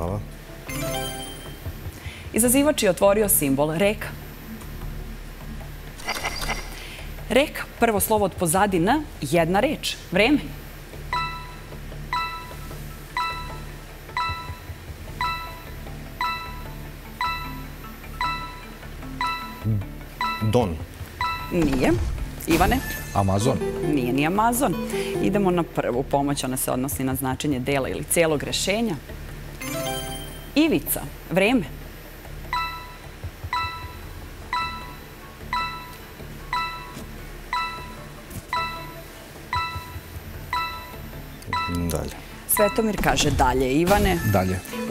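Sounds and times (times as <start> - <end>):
low steady music bed: 0.0 - 6.0, 6.8 - 44.9
electronic countdown ping: 11.1 - 21.8, 32.4 - 43.0.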